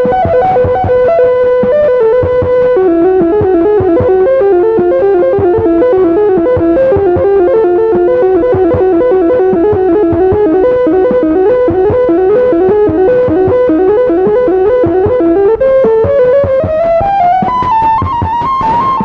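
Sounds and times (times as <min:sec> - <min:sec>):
electronic keyboard melody: 0:00.0 - 0:19.0
steady drum beat: 0:00.0 - 0:19.0.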